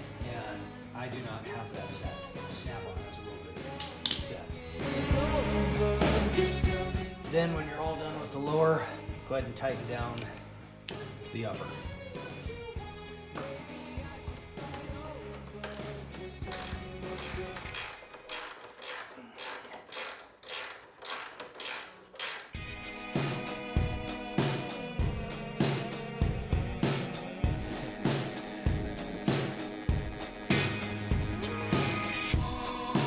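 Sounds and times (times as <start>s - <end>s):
background music: 0.0s - 33.0s
music with steady drum beat: 1.2s - 10.1s, 11.0s - 17.9s, 22.6s - 33.0s
socket ratchet clicking: 3.8s - 4.3s, 15.4s - 22.6s.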